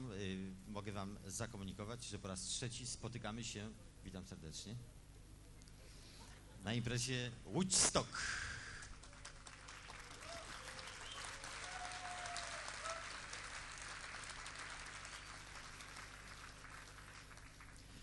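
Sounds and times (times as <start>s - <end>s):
audience applauding: 8.9s - 18.0s.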